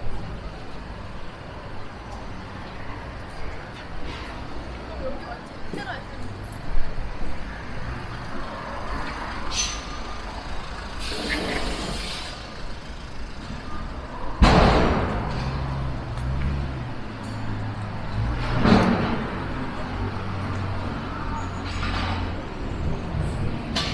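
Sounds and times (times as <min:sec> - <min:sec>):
road traffic engines: 0:00.0 - 0:23.9
bus air brakes hissing: 0:10.8 - 0:12.9.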